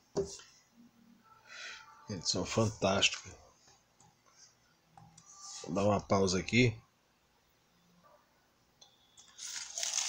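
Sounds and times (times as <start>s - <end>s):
plastic shrink-wrap crinkling: 9.4s - 10.0s.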